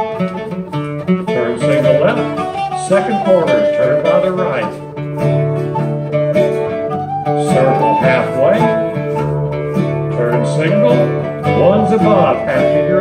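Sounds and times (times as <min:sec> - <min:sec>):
acoustic guitar: 0:00.0 - 0:13.0
plucked bouzouki: 0:00.0 - 0:13.0
recorder melody: 0:00.0 - 0:13.0.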